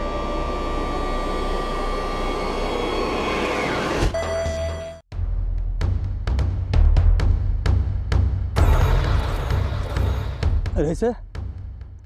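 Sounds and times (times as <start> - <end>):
loud noise drone with held tones: 0.0 - 4.1.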